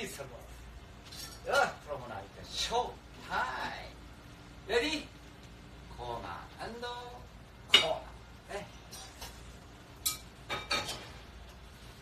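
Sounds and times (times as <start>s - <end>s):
cutlery and dishes clinking: 1.0s - 1.5s, 10.0s - 11.2s.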